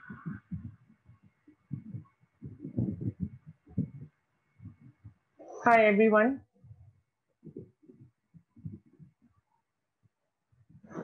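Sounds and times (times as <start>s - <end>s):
faint low bumps: 0.0s - 5.4s, 6.1s - 9.4s
woman speaking: 5.7s - 6.4s.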